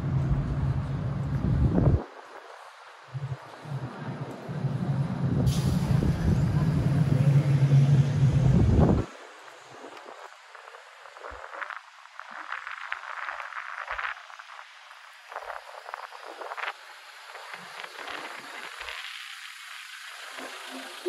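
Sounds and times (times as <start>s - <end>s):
distant traffic hiss: 2.0s - 11.5s, 14.4s - 21.0s.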